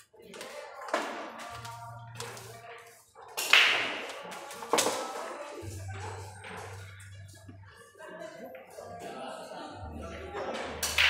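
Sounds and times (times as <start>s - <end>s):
billiard balls clacking: 10.1s - 11.0s.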